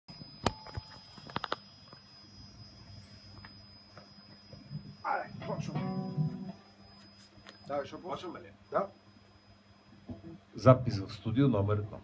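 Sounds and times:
faint low hum: 0.2s - 12.0s.

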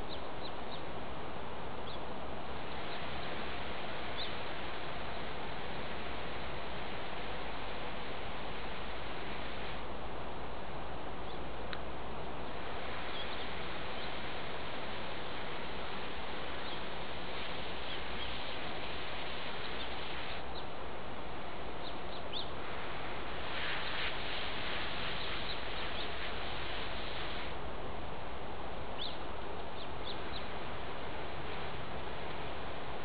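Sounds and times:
outdoor background hiss: 0.0s - 33.0s.

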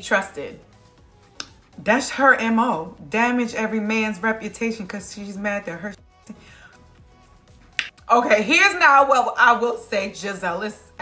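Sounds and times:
faint background music: 0.0s - 11.0s
sharp snap: 1.3s - 1.6s, 7.7s - 8.0s.

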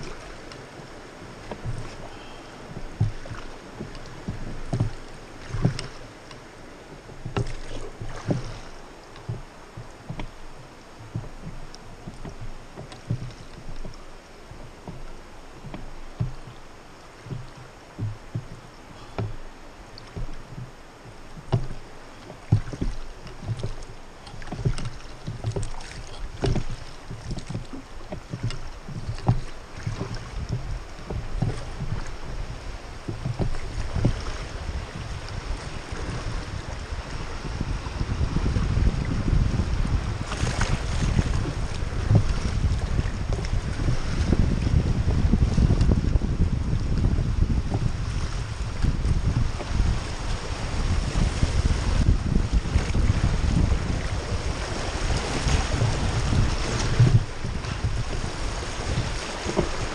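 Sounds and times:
river water rushing: 0.0s - 38.2s, 48.0s - 59.9s
water splashes: 0.0s - 59.9s
wind buffeting microphone: 0.0s - 59.9s.

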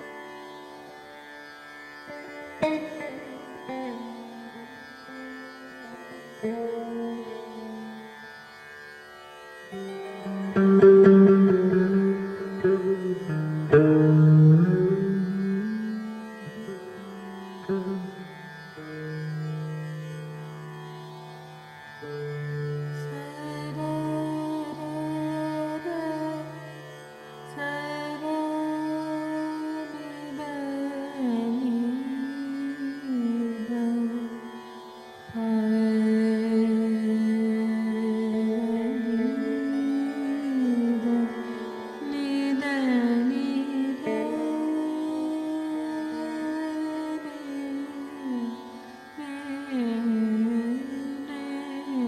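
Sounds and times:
electric saz: 1.7s - 8.4s, 9.2s - 52.0s
woman singing: 23.0s - 26.7s, 27.5s - 34.6s, 35.3s - 52.0s.

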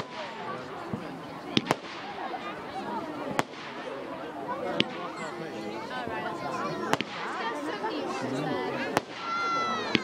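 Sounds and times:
firework bang: 0.0s - 2.3s, 3.2s - 4.0s
crowd chattering: 0.0s - 10.0s.

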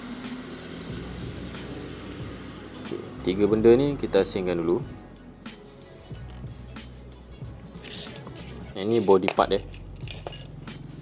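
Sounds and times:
light metal clinks and clicks: 8.1s - 10.7s.

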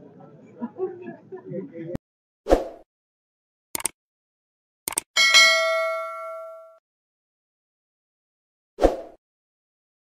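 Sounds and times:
bright bell ding: 5.2s - 6.8s.

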